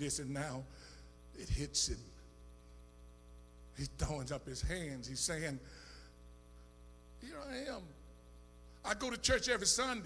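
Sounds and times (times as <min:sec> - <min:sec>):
electrical mains hum: 0:00.0 - 0:10.0
man speaking: 0:01.4 - 0:02.2, 0:03.8 - 0:05.7, 0:07.2 - 0:08.0, 0:08.8 - 0:10.0.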